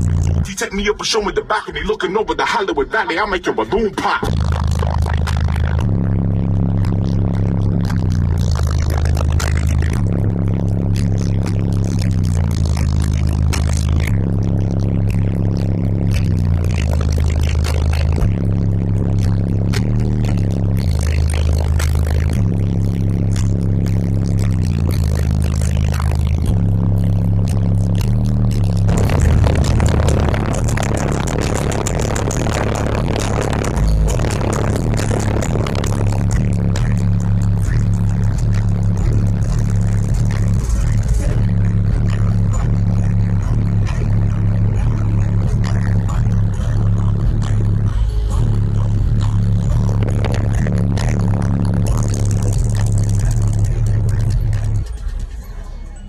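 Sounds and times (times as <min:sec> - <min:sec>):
bass-heavy music through car subwoofers: 0:00.0 - 0:56.0.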